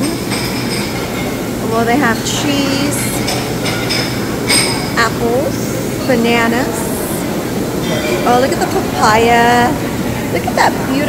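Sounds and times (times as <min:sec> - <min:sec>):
crowd chatter: 0:00.0 - 0:11.0
dishes and utensils clinking: 0:00.0 - 0:11.0.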